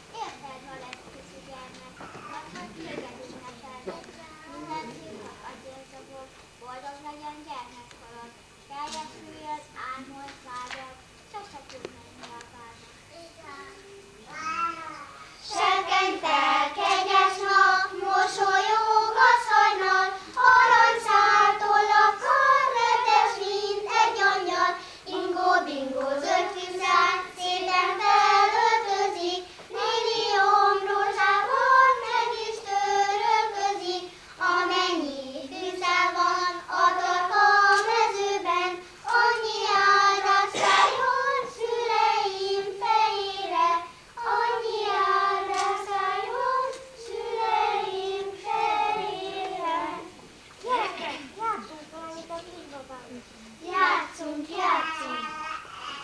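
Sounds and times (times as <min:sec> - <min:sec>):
children singing in unison: 0:15.4 - 0:50.2.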